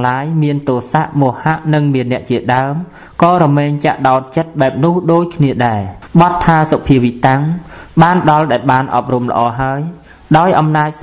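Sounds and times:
person chanting: 0.0s - 11.0s.

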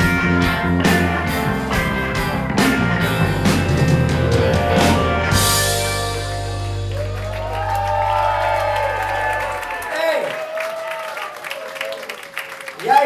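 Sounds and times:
rock band final chord: 0.0s - 9.8s
audience applauding and cheering: 4.4s - 13.0s.

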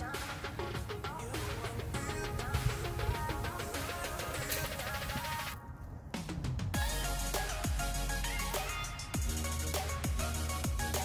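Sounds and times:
melody over steady beat: 6.8s - 11.0s.

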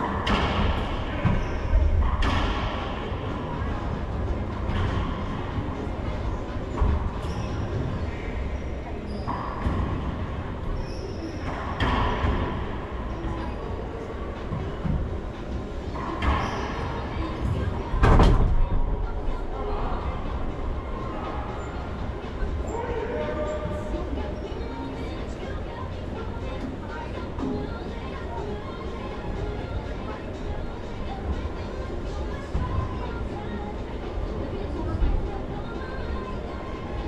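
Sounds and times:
hollow room rumble: 0.0s - 37.0s
sneaker squeaks: 1.1s - 2.2s, 6.7s - 10.0s, 10.6s - 12.0s, 16.0s - 17.3s.

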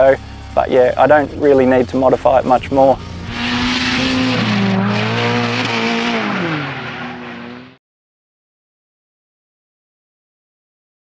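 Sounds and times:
car engine revving high: 2.9s - 7.8s.

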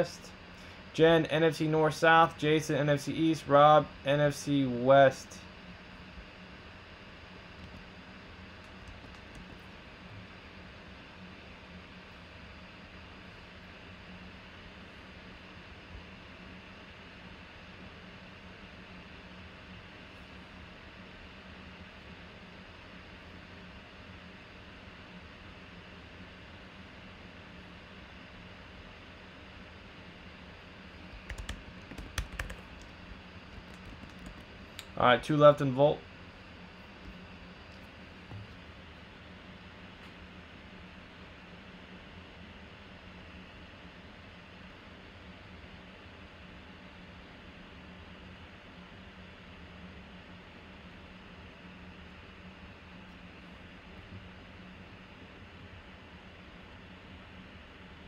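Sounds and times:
steady low hum: 0.0s - 58.0s
computer keyboard typing: 8.6s - 9.6s, 31.1s - 34.6s.

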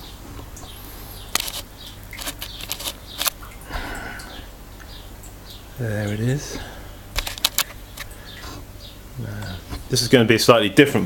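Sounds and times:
camera handling clicks: 1.3s - 1.6s.

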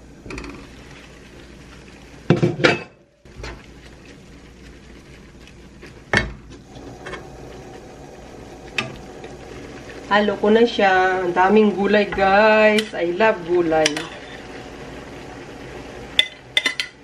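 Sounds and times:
pots and pans crashing: 2.3s - 3.0s
utensils scraping a wok: 13.7s - 14.5s.

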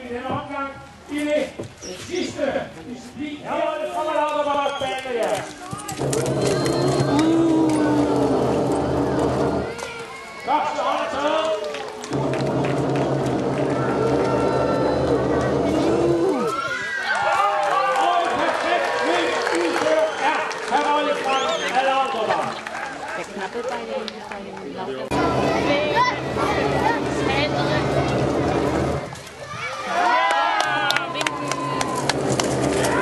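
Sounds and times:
steady low hum: 12.1s - 16.4s, 25.1s - 29.2s.

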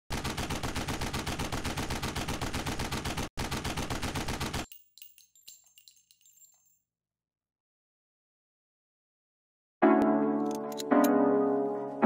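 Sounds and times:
machine-gun fire: 0.1s - 4.7s
shell casings clinking: 4.6s - 6.8s.

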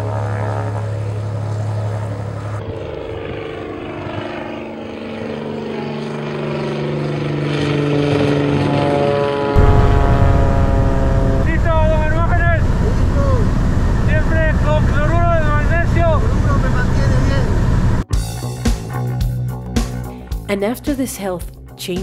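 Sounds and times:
propeller plane engine drone: 0.0s - 18.1s.

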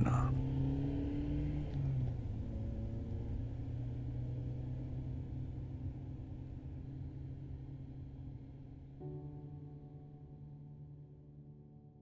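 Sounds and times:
car cruising road noise: 0.0s - 9.0s.

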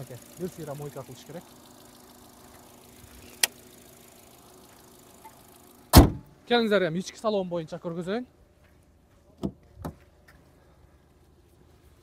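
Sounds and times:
car engine idling: 0.0s - 6.4s.

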